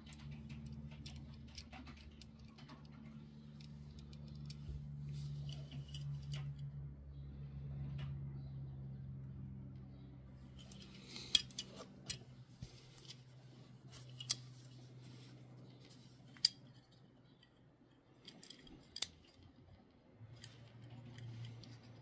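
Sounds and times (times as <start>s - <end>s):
toy car parts clicking: 0.0s - 4.8s, 10.6s - 12.2s, 18.2s - 22.0s.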